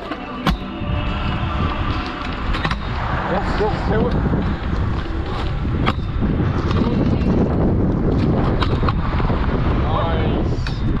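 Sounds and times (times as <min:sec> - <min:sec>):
scooter wheels rolling on tarmac: 0:00.0 - 0:11.0
wind rumble on microphone: 0:00.6 - 0:11.0.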